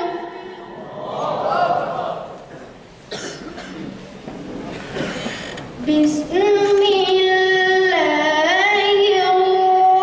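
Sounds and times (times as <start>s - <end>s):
boy's melodic recitation: 0.0s - 0.4s, 5.8s - 10.0s
short cough: 3.1s - 4.0s.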